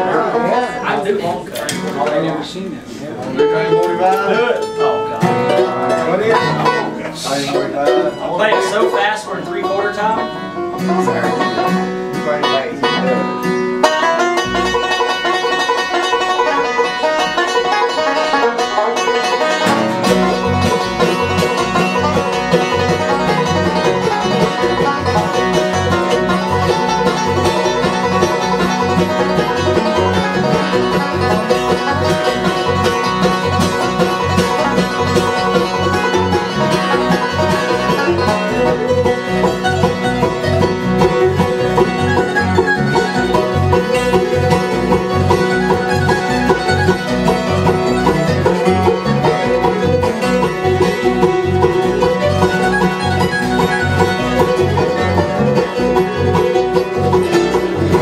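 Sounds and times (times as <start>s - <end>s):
acoustic guitar picking: 0.0s - 58.0s
banjo rolls: 0.0s - 58.0s
mandolin: 0.0s - 58.0s
electric bass: 19.4s - 58.0s.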